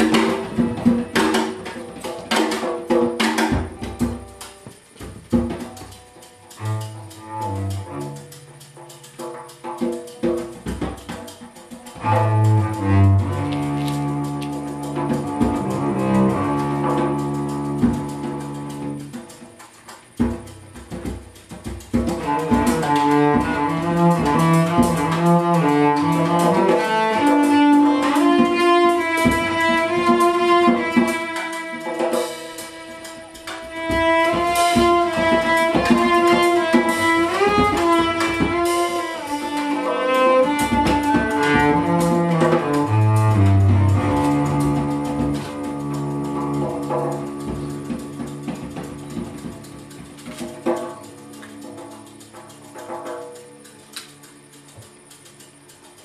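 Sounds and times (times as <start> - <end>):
bowed cello: 5.3 - 19.5, 21.9 - 53.4.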